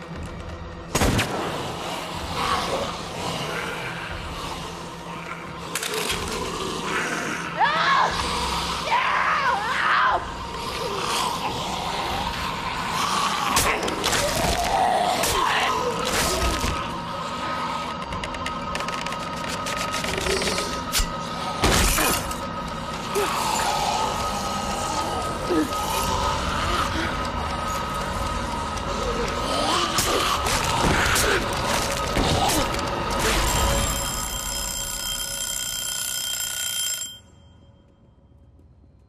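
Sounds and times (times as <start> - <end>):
tense drama score drone: 0.0 - 39.0
sustained high ringing tone: 33.4 - 38.4.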